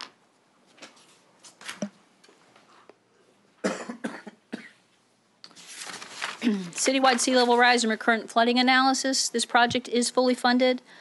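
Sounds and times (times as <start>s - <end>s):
person coughing: 3.6s - 4.8s.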